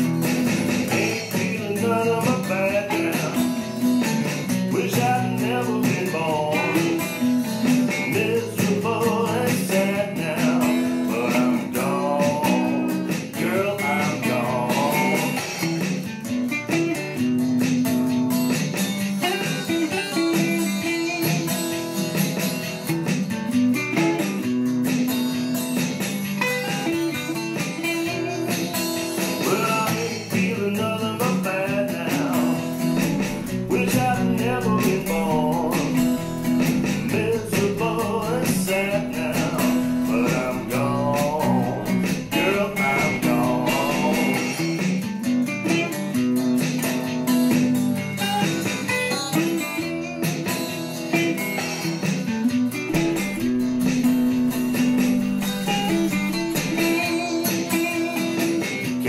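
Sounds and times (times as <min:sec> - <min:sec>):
rhythm guitar accompaniment: 0:00.0 - 0:59.0
lead guitar bending notes: 0:13.7 - 0:59.0.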